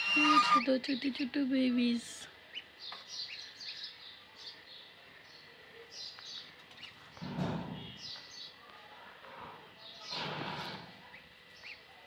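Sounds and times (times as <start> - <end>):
goslings peeping: 0.0 - 0.7.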